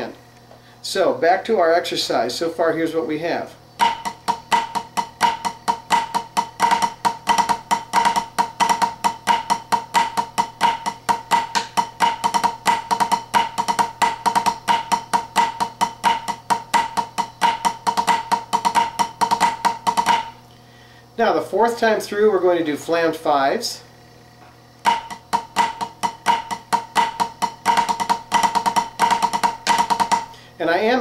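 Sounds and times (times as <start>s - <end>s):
drumsticks on practice pad: 3.8s - 20.4s, 24.4s - 30.3s.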